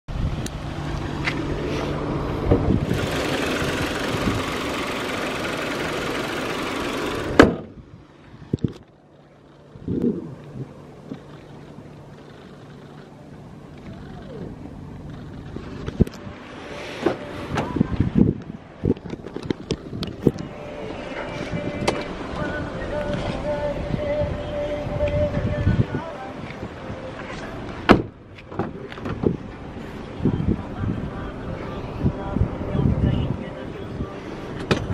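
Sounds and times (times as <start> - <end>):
car engine running: 0.2 - 24.0
car bonnet slamming shut: 7.2 - 7.8, 27.8 - 29.4
car door handle and latch clicks: 21.8 - 22.1, 34.6 - 34.9.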